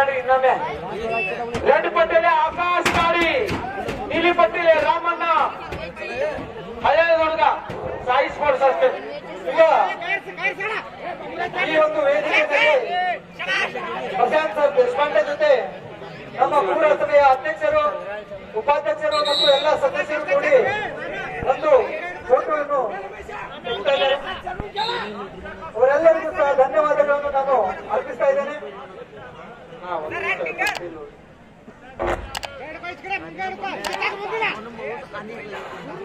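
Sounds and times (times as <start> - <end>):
crowd chatter: 0.0 - 36.0
men talking over one another: 0.0 - 36.0.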